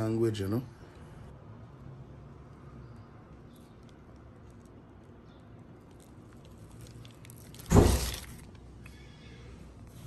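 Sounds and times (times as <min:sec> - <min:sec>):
paper wrapper crackling: 0:03.6 - 0:08.8.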